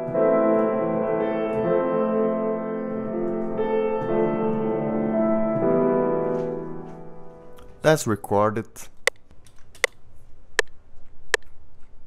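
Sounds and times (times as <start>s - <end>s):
slow piano chords: 0.0s - 7.9s.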